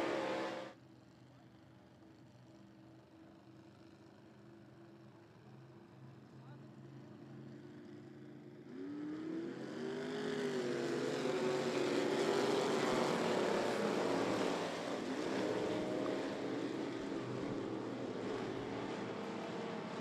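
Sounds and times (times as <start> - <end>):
stock car engines accelerating: 0.0 - 0.8, 8.5 - 20.0.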